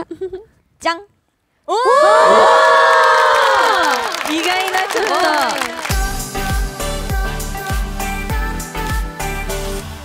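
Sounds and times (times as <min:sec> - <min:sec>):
young women exclaiming woah: 0:01.7 - 0:05.8.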